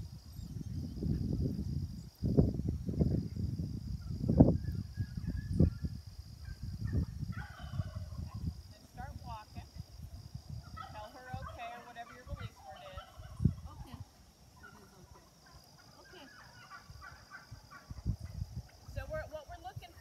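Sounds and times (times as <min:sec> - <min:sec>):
farm birds calling: 0:06.9 - 0:08.3, 0:10.6 - 0:18.9.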